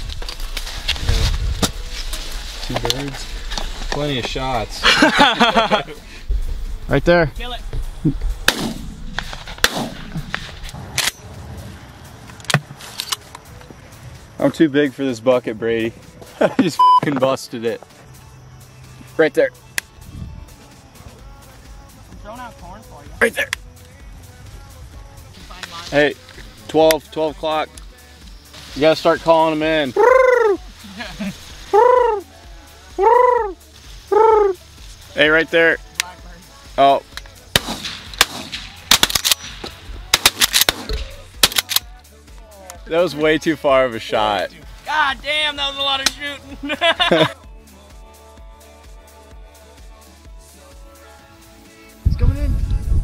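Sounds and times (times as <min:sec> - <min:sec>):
shot echo: 0:08.4 - 0:11.2, 0:37.5 - 0:41.9
shotgun shots: 0:08.4 - 0:11.2, 0:37.5 - 0:41.9.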